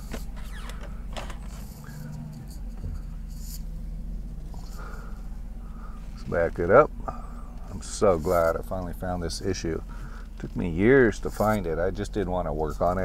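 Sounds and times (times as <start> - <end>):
car engine idling: 0.0 - 13.0.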